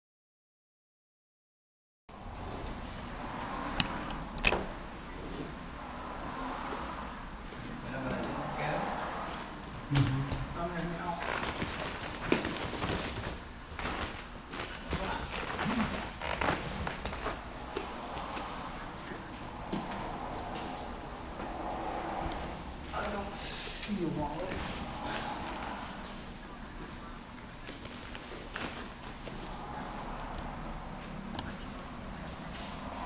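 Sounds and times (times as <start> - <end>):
indistinct voices: 7.8 - 12.4, 14.8 - 33.0.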